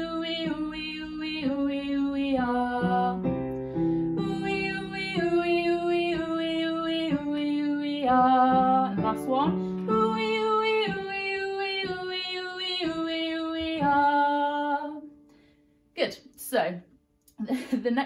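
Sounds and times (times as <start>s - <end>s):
woman singing vocal scale: 0.0s - 3.3s, 4.1s - 15.1s
digital piano chords: 0.0s - 14.4s.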